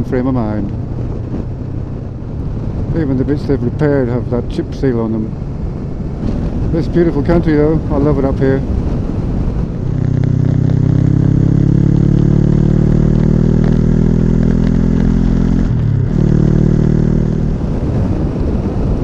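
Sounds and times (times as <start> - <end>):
motorcycle engine pulling steadily: 0.0 - 19.0
road noise: 0.0 - 19.0
wind noise: 0.0 - 19.0.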